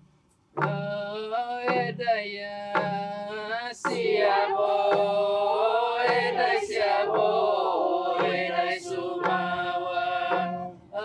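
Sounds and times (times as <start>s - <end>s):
hand drums thumping: 0.5s - 10.8s
group singing: 0.7s - 11.0s.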